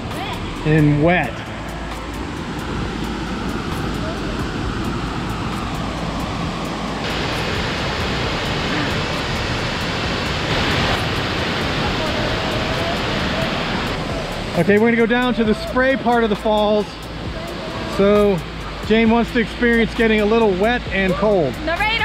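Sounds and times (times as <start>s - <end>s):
waterfall roaring: 0.0s - 22.0s.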